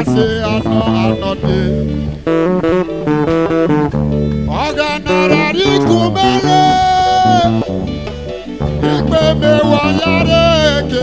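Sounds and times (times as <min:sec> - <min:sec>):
live band playing: 0:00.0 - 0:11.0
low bass notes: 0:00.0 - 0:11.0.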